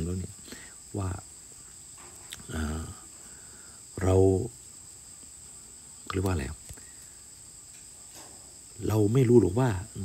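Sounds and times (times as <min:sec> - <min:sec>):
crickets trilling: 0:00.0 - 0:10.0
person speaking: 0:02.3 - 0:03.1, 0:06.1 - 0:06.7.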